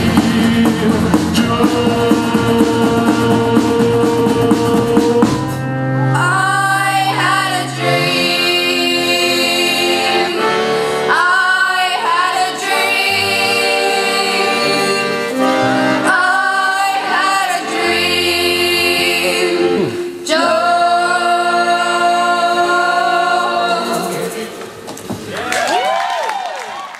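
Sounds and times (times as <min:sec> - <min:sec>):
accordion: 0:00.0 - 0:24.5
voices singing together: 0:00.0 - 0:24.7.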